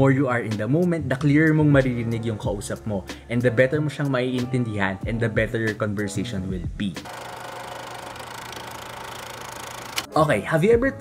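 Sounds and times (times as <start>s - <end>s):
film projector clatter: 7.0s - 10.1s.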